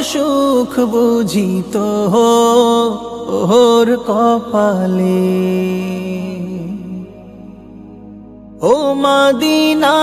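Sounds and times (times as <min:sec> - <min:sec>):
man singing: 0:00.0 - 0:07.6, 0:08.6 - 0:10.0.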